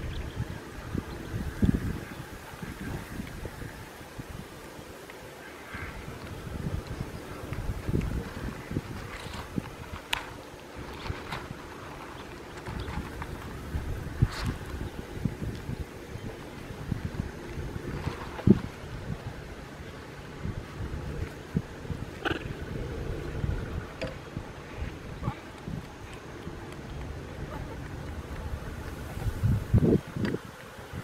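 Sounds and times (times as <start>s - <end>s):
wind rumbling on microphone: 0.0s - 31.0s
leaf rustling and crinkling: 1.3s - 24.0s.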